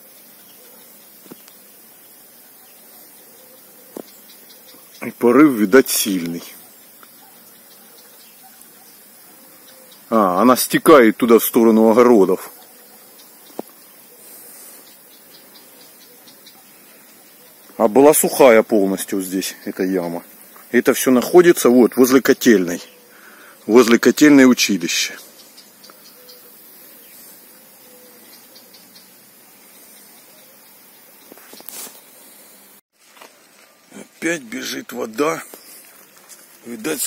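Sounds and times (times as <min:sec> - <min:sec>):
faint hiss of escaping water: 0:13.4 - 0:16.0.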